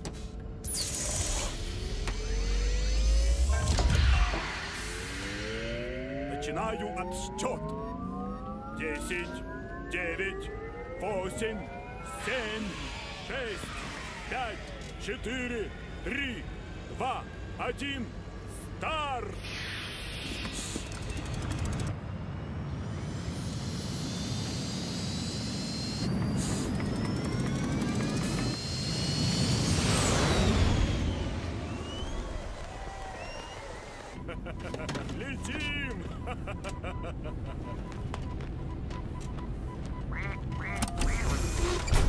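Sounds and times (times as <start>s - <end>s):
climbing whine: 0.0s - 42.0s
rocket launch roar: 1.5s - 6.4s.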